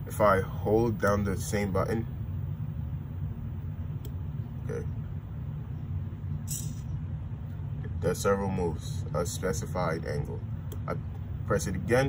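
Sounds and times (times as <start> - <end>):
steady low hum: 0.0 - 12.0
click: 4.0 - 4.2.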